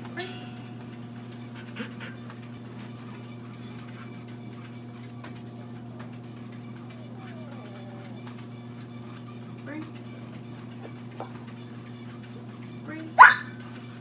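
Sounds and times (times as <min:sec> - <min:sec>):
low electrical hum: 0:00.0 - 0:14.0
dog whining: 0:01.5 - 0:02.3, 0:06.6 - 0:08.9, 0:13.2 - 0:13.6.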